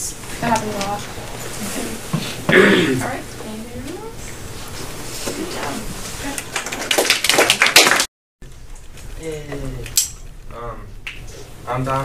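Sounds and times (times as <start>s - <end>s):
people clapping: 6.3s - 8.1s.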